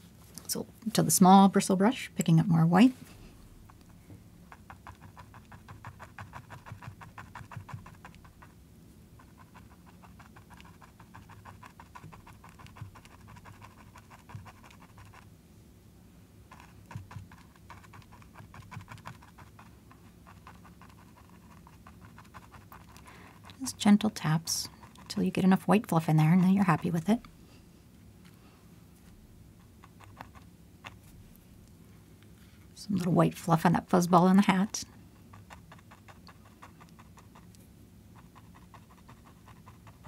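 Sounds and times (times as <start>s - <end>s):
steady low hum: 0.0s - 40.0s
brush dabbing paint on canvas: 16.5s - 27.2s.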